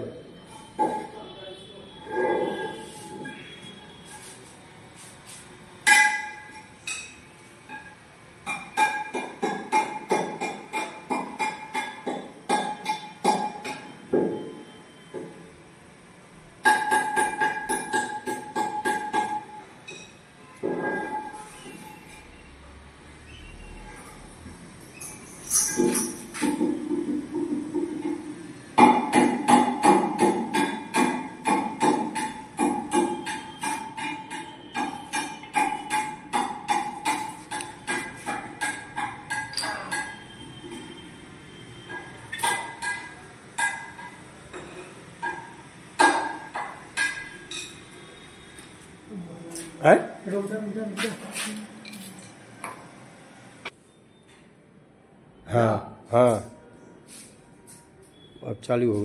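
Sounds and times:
ringing clinks of hard object: 5.8s - 14.8s, 24.9s - 26.4s, 29.9s - 41.0s, 41.8s - 48.3s
hammer striking metal: 5.8s - 15.3s, 16.6s - 21.4s, 28.8s - 41.0s, 41.8s - 47.9s.

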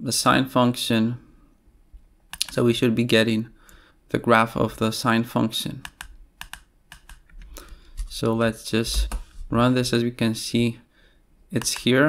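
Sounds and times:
computer keyboard keystrokes: 2.3s - 2.6s, 5.8s - 7.4s, 11.6s - 11.9s.

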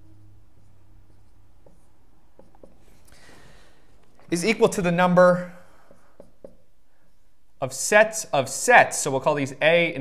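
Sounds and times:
marker writing on whiteboard: 0.6s - 3.1s, 5.4s - 7.3s.

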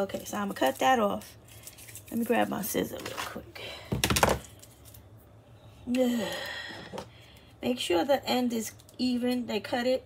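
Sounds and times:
scissors knocking and clattering: 3.9s - 4.5s.

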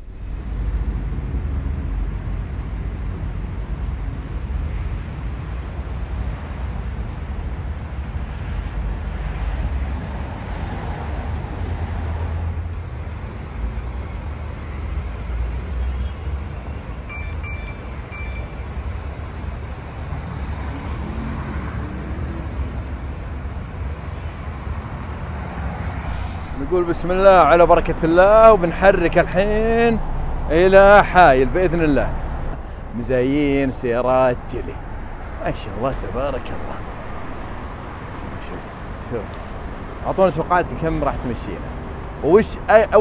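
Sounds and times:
moving car low rumble: 0.0s - 43.0s.

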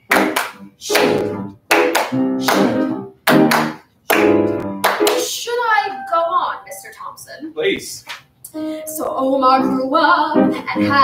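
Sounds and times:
piano chord stabs: 0.1s - 5.2s, 5.8s - 7.0s.

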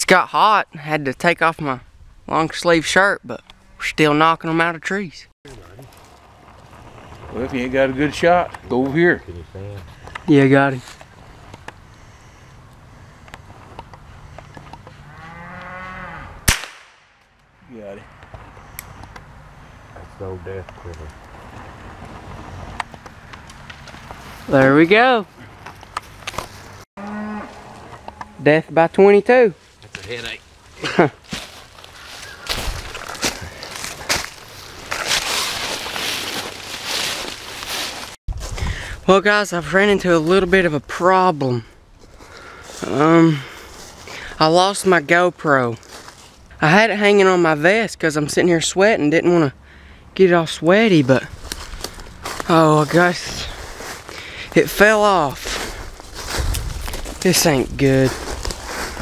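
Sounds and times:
rifle shot: 16.4s - 17.2s
footsteps through dry leaves: 23.8s - 24.6s, 29.6s - 38.6s, 42.0s - 44.2s, 45.7s - 46.5s, 51.2s - 59.0s
person laughing: 30.8s - 31.2s.

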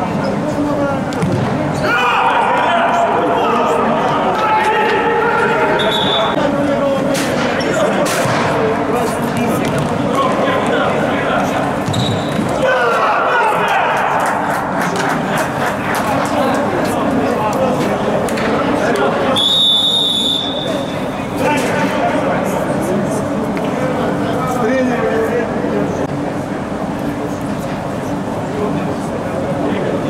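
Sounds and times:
ball kick thud: 1.2s - 1.6s
men shouting in echoing hall: 1.8s - 6.8s, 12.6s - 15.6s.

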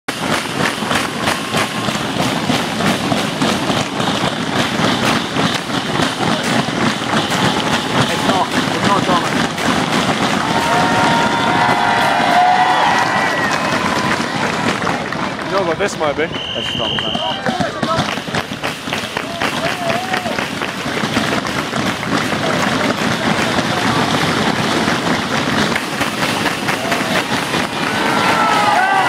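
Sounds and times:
spectators clapping and cheering: 0.0s - 29.0s
rapid claps or raps: 0.1s - 12.3s, 12.9s - 29.0s.

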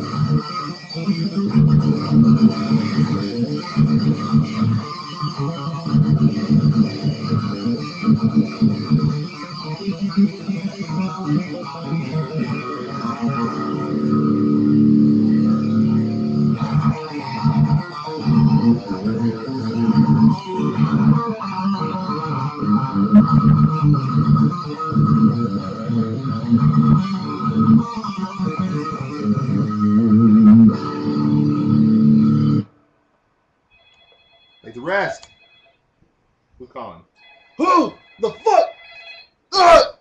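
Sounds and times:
electric guitar metal riffs: 0.0s - 32.7s.

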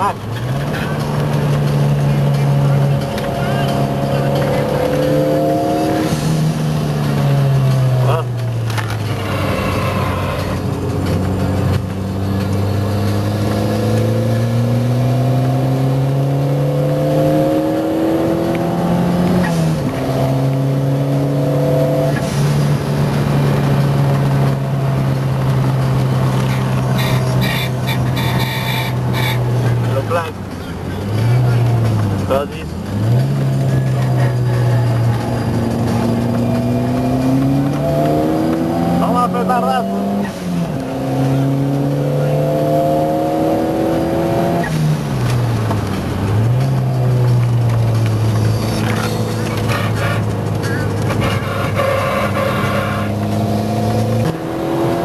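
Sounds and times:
racing car engine revving: 0.0s - 55.0s.

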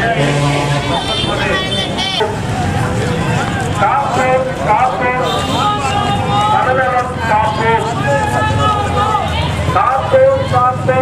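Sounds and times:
busy street background: 0.0s - 11.0s
crowd of marchers talking: 0.0s - 11.0s.

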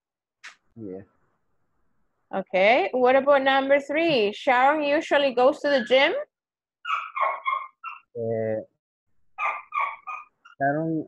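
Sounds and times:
small dog yapping: 6.8s - 8.1s, 9.4s - 10.4s.

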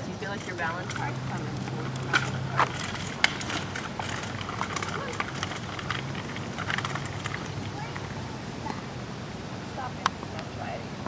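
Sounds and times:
footsteps on asphalt: 0.0s - 8.8s
bicycle wheeled over asphalt: 0.0s - 10.8s.

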